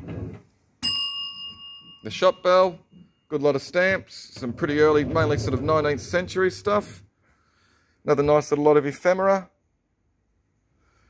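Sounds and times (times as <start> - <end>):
counter bell ringing: 0.8 - 3.6.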